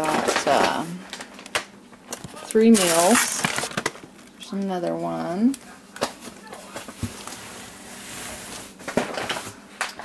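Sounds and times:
paper bags rustling and crinkling: 2.2s - 4.1s.

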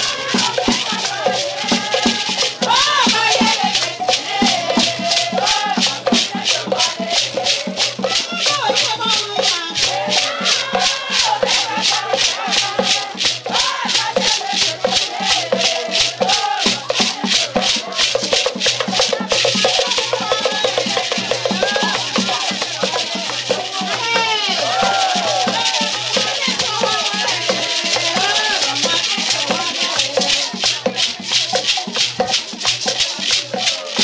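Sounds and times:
group singing: 0.0s - 34.0s
hand rattles shaken: 0.0s - 34.0s.

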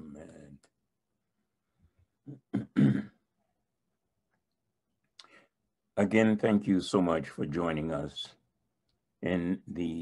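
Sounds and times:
man clearing his throat: 2.3s - 3.2s.

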